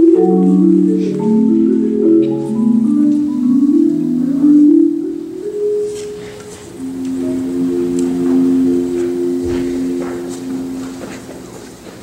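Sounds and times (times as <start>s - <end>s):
marimba chord: 0.0s - 11.7s.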